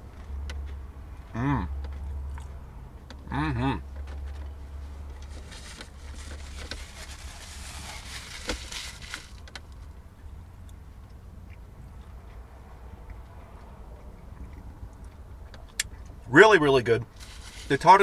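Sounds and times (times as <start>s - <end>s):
man chewing crunchy food: 10.7s - 16.2s.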